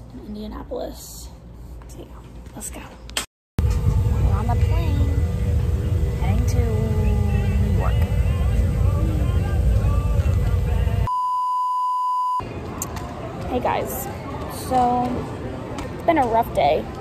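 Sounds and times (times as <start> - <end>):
airliner cabin rumble: 3.6 - 11.1
airport terminal ambience: 3.6 - 11.1
faint voices: 4.0 - 11.1
test-card beep tone: 11.1 - 12.4.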